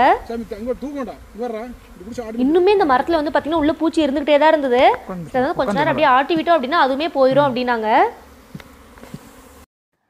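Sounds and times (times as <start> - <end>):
honeybees buzzing: 0.0 - 9.7.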